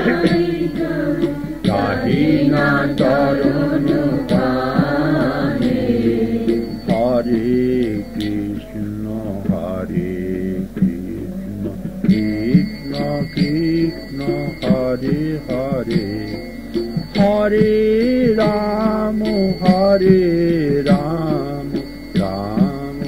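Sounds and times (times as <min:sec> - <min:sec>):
devotional singing: 0:00.0 - 0:23.0
percussive strikes on beat: 0:00.0 - 0:23.0
sustained accompaniment: 0:00.0 - 0:23.0.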